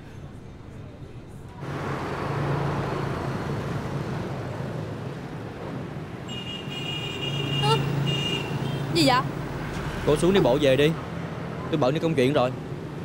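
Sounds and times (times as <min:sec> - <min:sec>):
street traffic noise: 0:00.0 - 0:13.0.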